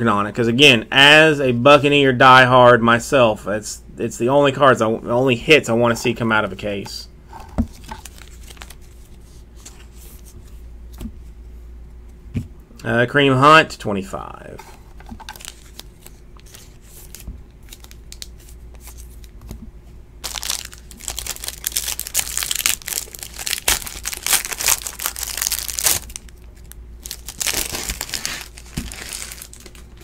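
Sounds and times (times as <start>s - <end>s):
plastic wrapper crinkling: 7.7s - 9.2s, 15.1s - 19.4s, 20.2s - 30.0s.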